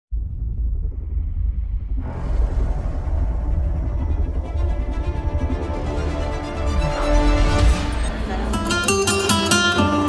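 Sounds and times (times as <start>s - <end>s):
deep rumbling cinematic drone: 0.1s - 8.8s.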